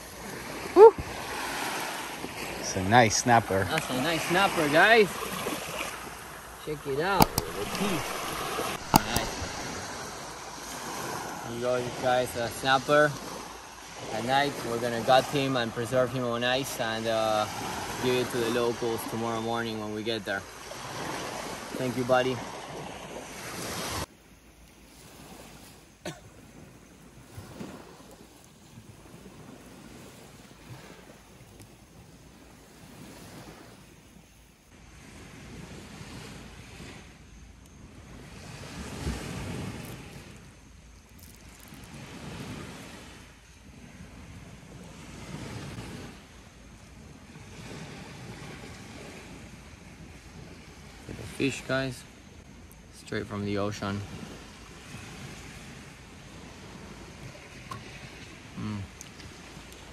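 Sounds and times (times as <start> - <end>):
wind buffeting microphone: 0.0 - 19.3, 37.9 - 40.5, 41.8 - 52.6
small waves washing onto beach: 0.0 - 59.9
sharp clicks: 7.2 - 8.2.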